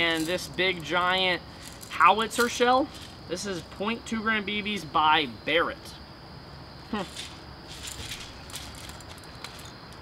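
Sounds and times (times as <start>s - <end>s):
quiet outdoor background: 0.0s - 10.0s.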